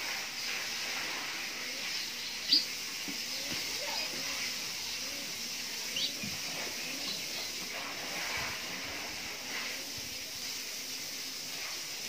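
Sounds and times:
background hiss: 0.0s - 12.0s.

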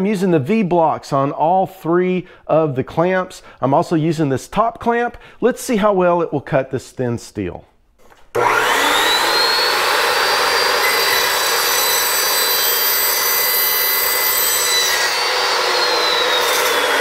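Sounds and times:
chop saw running: 8.4s - 17.0s
saw blade spinning down: 8.4s - 17.0s
saw cutting steel tube: 8.4s - 17.0s.

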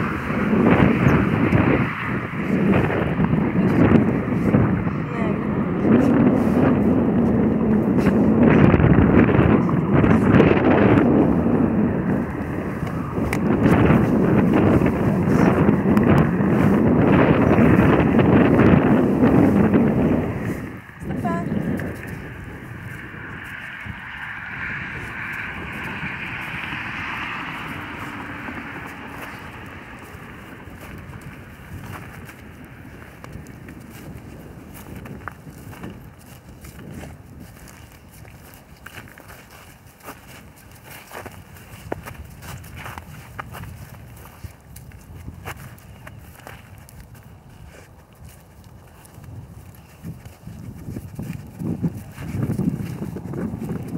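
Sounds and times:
wind buffeting microphone: 0.0s - 53.9s.

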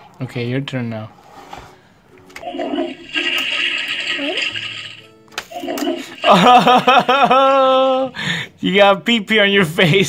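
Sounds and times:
electronic toilet flush sound: 2.4s - 7.1s.

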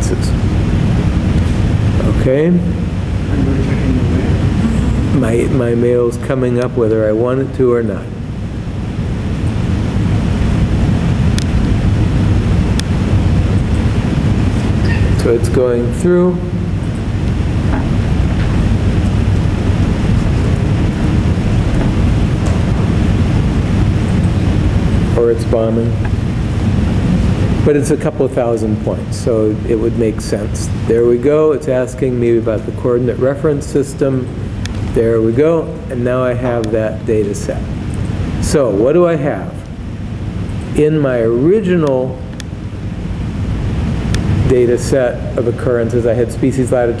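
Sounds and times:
low rumble with hiss: 0.0s - 47.0s.

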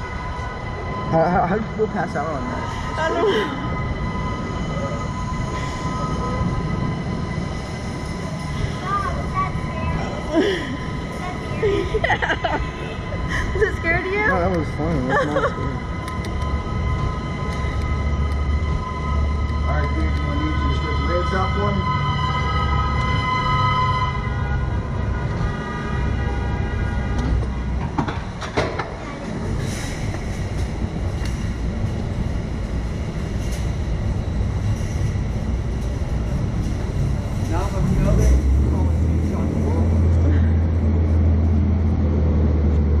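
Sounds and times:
deep steady hum: 0.0s - 43.0s
low rumble: 0.0s - 43.0s
horn-like tone: 12.9s - 27.8s.

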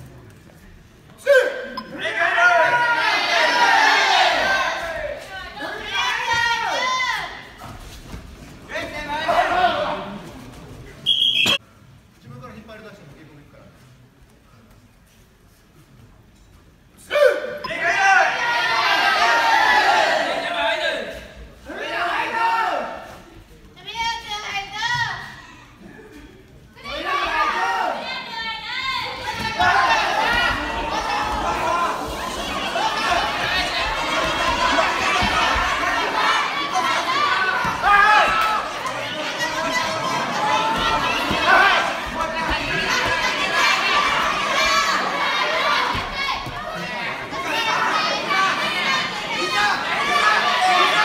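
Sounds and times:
crowd shouting: 1.3s - 7.5s, 17.1s - 21.1s, 26.8s - 51.0s.

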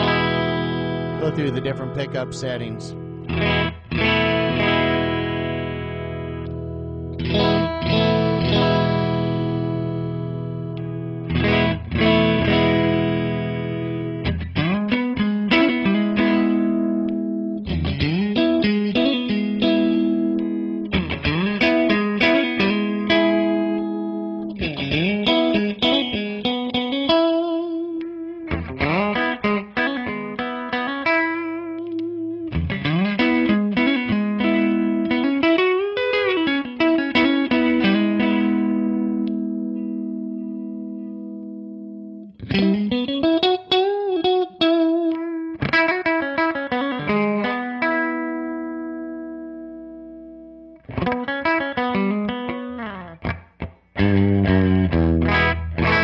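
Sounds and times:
clean electric guitar chords: 0.0s - 56.0s
picked guitar chords and arpeggios: 0.0s - 56.0s.

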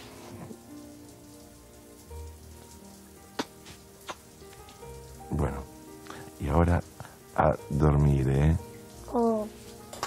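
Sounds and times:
hissing patter: 0.0s - 10.0s
soft background score: 0.0s - 10.0s.

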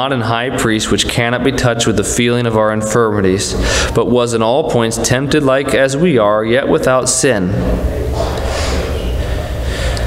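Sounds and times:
breath into a microphone: 3.6s - 4.0s, 8.1s - 10.0s.

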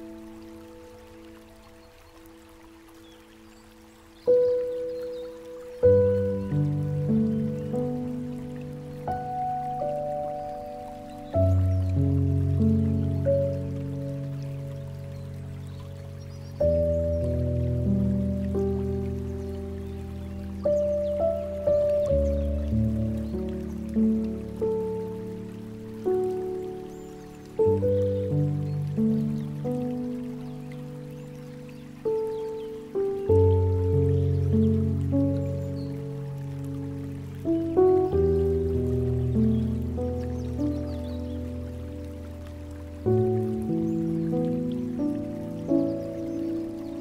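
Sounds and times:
faint trickle of water: 0.0s - 47.0s
slow calm piano music: 0.0s - 47.0s.

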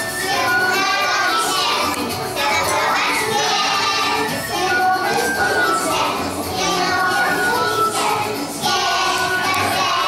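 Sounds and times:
backing music: 0.0s - 10.0s
children singing together: 0.0s - 10.0s.

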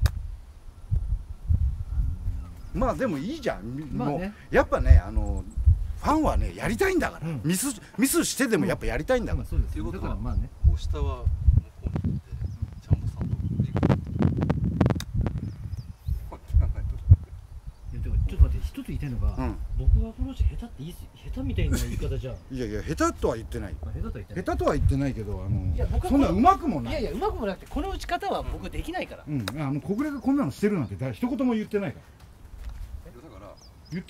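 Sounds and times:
low rumbling microphone noise: 0.0s - 28.9s.

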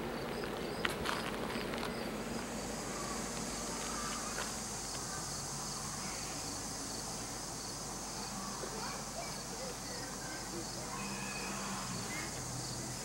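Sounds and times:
insects chirring: 0.0s - 13.0s.

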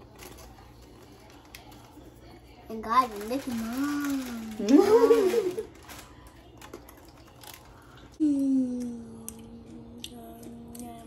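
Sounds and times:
person humming mmm: 8.2s - 11.0s.

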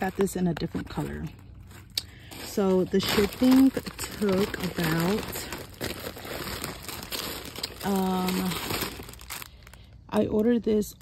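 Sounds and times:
plastic packaging crinkling: 0.0s - 10.6s.

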